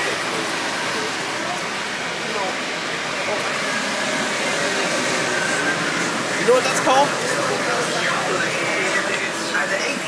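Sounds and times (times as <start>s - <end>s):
distant voices talking: 0.0s - 10.0s
shop background hum: 0.0s - 10.0s.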